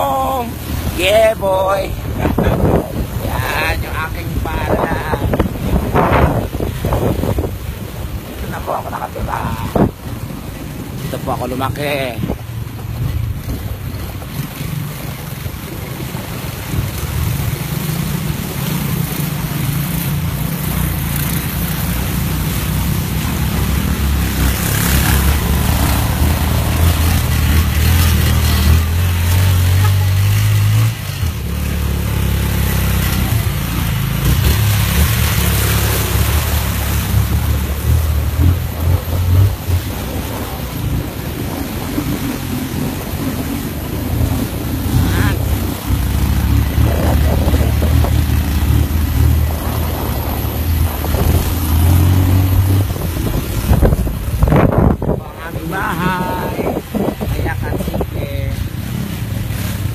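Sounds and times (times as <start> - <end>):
wind rumble on microphone: 0.0 - 31.5, 33.2 - 59.9.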